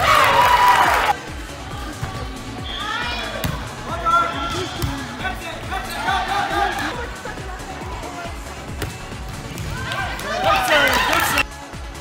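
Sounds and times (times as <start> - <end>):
music: 0.0 - 12.0
young voices yelling and cheering: 4.0 - 8.3.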